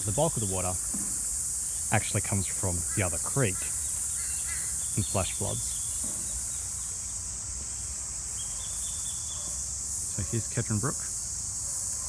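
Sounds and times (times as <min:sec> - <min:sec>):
insects chorus: 0:00.0 - 0:12.0.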